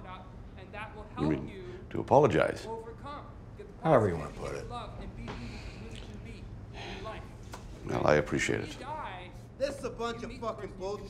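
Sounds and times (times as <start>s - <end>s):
low room hum: 0.0s - 11.0s
man talking: 7.8s - 8.8s.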